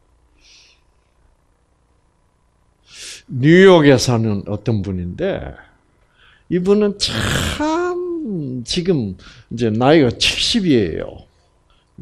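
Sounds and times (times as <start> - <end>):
faint hiss: 0.0 - 1.0, 2.8 - 3.5.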